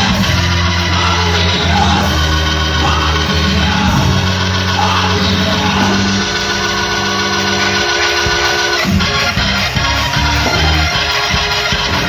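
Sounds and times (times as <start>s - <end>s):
person singing: 0.0s - 9.2s
deep bass line: 0.0s - 12.0s
live band music: 0.0s - 12.0s.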